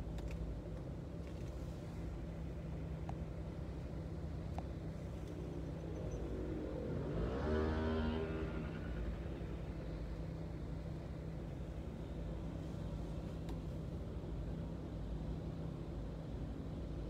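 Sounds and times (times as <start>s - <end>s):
vehicle accelerating past: 6.3s - 9.8s.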